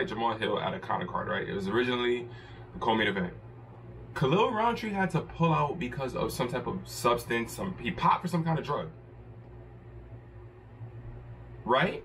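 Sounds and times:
faint low hum with hiss: 0:00.0 - 0:12.0.

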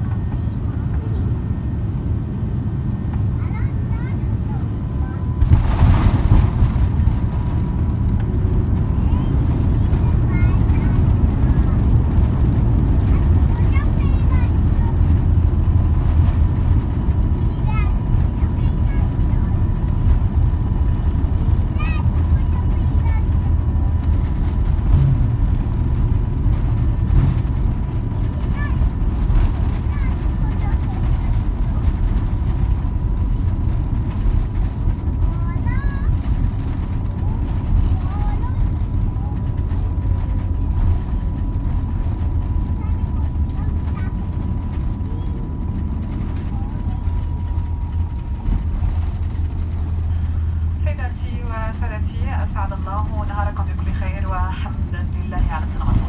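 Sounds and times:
airliner engines rumbling: 0:00.0 - 0:56.0
wheels rolling on runway: 0:05.4 - 0:56.0
voice on cabin speakers: 0:08.8 - 0:15.2, 0:35.2 - 0:56.0.

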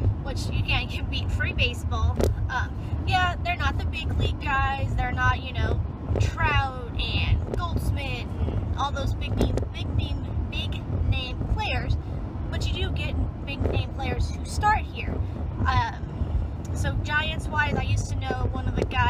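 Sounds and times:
car cabin rumble: 0:00.0 - 0:19.0
woman talking: 0:00.2 - 0:16.0, 0:16.7 - 0:19.0.

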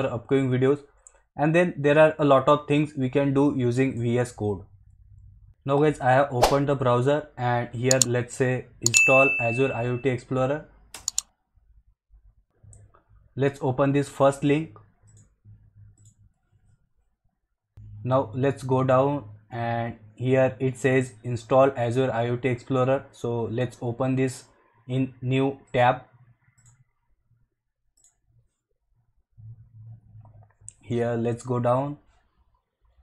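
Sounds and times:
faint computer mouse clicks: 0:11.0 - 0:11.3, 0:15.9 - 0:16.2.

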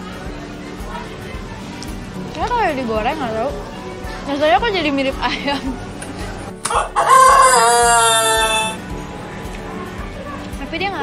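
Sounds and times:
rooster crowing: 0:06.6 - 0:08.8.

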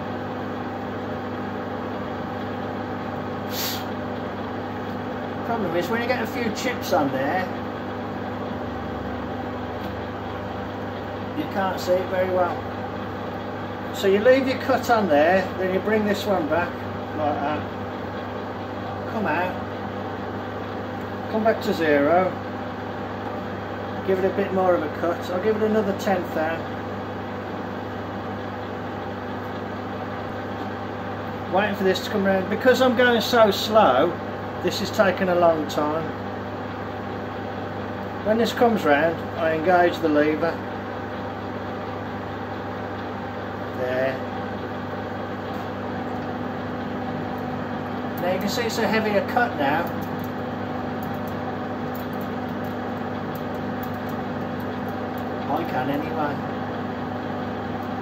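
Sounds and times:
lathe motor humming: 0:00.0 - 0:58.0.

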